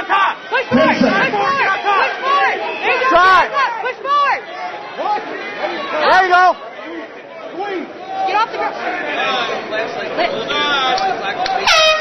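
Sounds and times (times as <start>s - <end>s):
crowd shouting: 0.0s - 12.0s
loud air horn blast: 11.6s - 12.0s.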